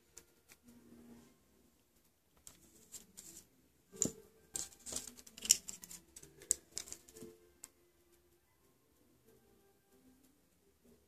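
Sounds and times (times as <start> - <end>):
metal tweezers clicking in plastic jar: 4.0 - 7.1.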